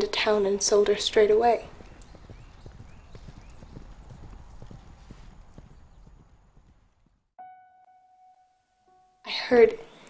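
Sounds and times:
horse hooves on gravel: 0.0s - 7.3s.

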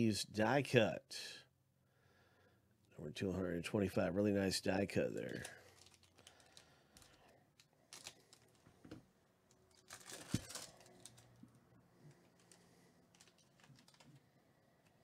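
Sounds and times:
foil pack crinkling and tearing: 5.2s - 8.6s, 9.7s - 11.4s.

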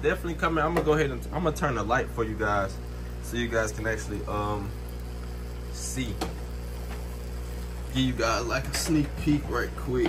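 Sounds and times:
aquarium pump humming: 0.0s - 10.0s.

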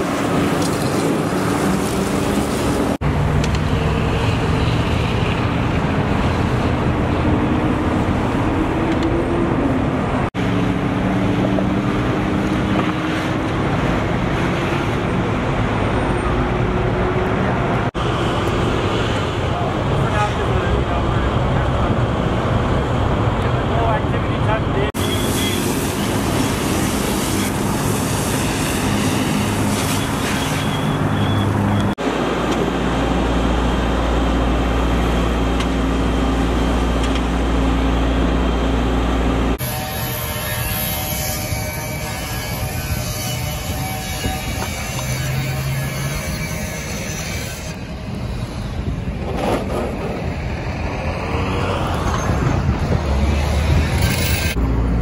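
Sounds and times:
diesel engines droning: 0.0s - 55.0s.

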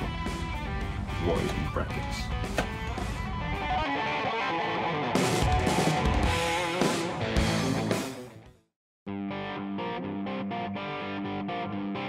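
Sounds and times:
rock music with guitar and bass: 0.0s - 12.0s
drums and cymbals: 5.2s - 8.2s.

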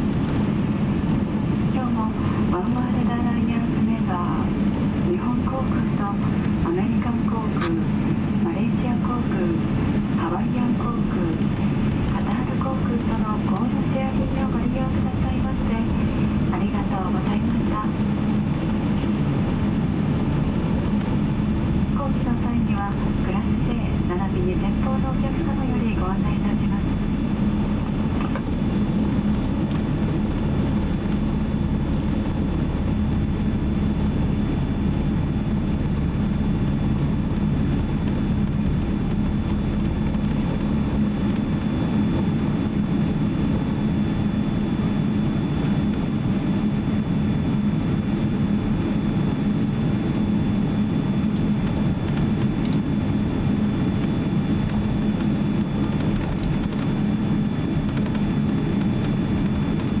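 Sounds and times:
jet engine low hum and rumble: 0.0s - 60.0s.

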